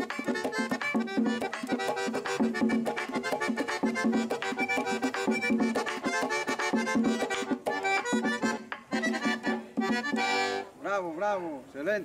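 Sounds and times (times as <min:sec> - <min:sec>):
drum: 0:00.0 - 0:10.6
sharp percussion strokes: 0:00.0 - 0:10.6
accordion playing fast tune: 0:00.0 - 0:10.8.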